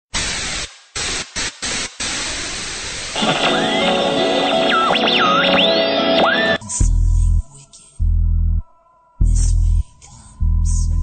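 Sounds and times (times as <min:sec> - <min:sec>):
radio static hissing: 0:00.2 - 0:06.6.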